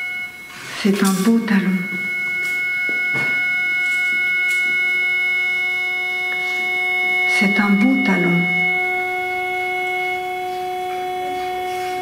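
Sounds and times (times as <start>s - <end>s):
guitar droning note: 0.0s - 12.0s.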